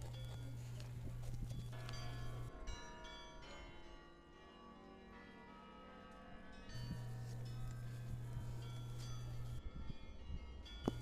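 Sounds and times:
steady low hum: 0.0 - 2.7, 6.7 - 11.0
bell-like ringing tones: 0.0 - 5.6, 6.5 - 11.0.

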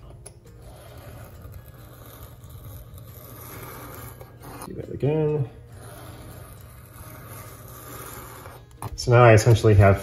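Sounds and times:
blade scraping paper: 0.6 - 4.7, 5.7 - 9.5.

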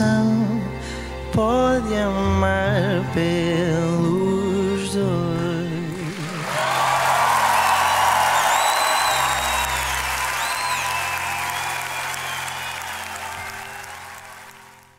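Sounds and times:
audience applauding and cheering: 5.9 - 14.9
high whistles: 6.6 - 14.6.

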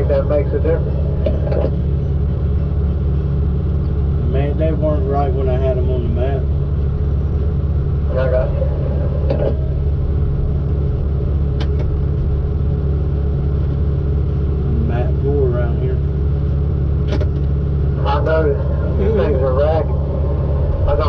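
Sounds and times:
diesel engine droning: 0.0 - 21.0.

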